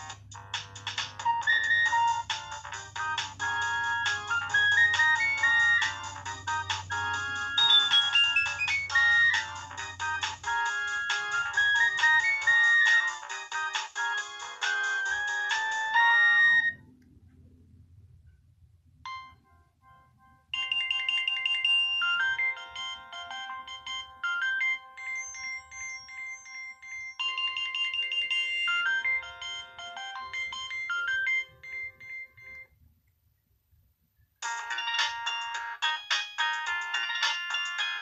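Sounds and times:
phone ringtone melodies: 0:00.0 - 0:16.8, 0:19.1 - 0:32.7, 0:34.4 - 0:38.0.

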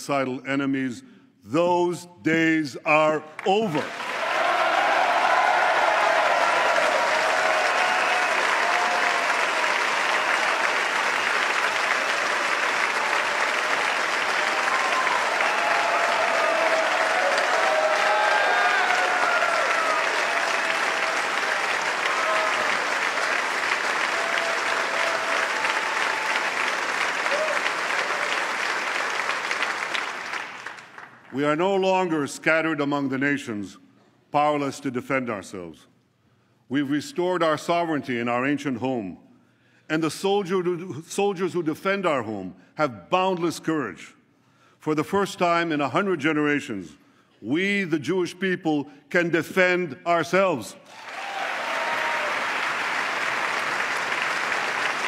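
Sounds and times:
crowd applauding: 0:03.4 - 0:31.3, 0:50.9 - 0:55.0
crowd cheering: 0:03.5 - 0:31.2, 0:50.8 - 0:55.0.

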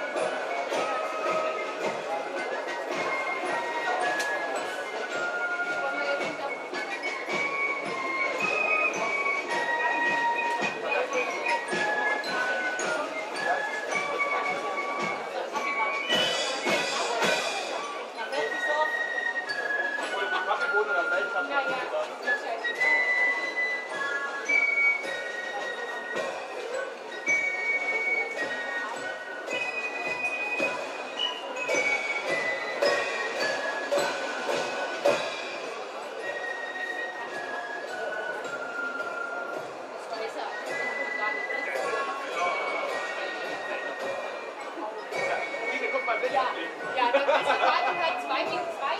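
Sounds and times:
fife melody: 0:00.0 - 0:48.9
snare drums: 0:00.1 - 0:18.7, 0:19.3 - 0:39.8.

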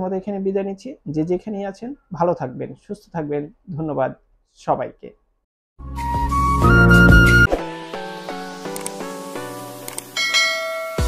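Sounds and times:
bright bell chime: 0:10.2 - 0:11.0.

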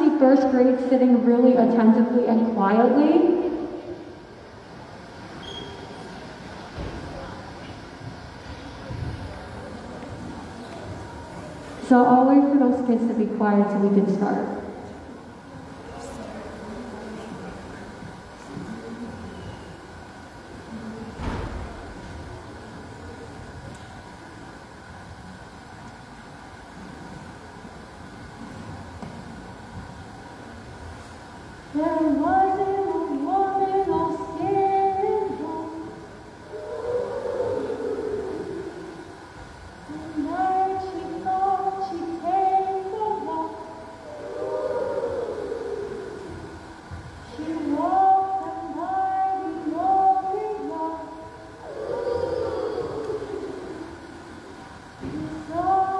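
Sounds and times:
thump: 0:21.2 - 0:21.9
woman singing into microphone: 0:31.8 - 0:36.0, 0:39.9 - 0:44.4, 0:47.2 - 0:53.3, 0:55.0 - 0:55.9
murmur of children: 0:36.3 - 0:39.4, 0:43.7 - 0:47.6, 0:51.3 - 0:55.9
children singing: 0:51.6 - 0:54.0.

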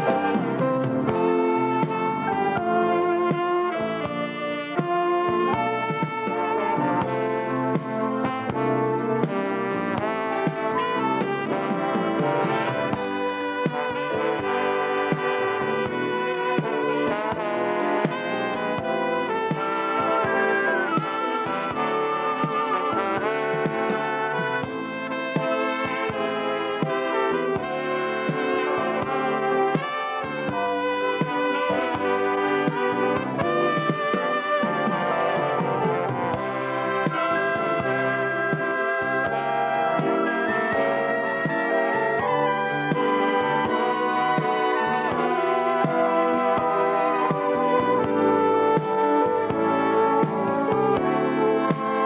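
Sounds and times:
brass band playing: 0:00.0 - 0:52.0.

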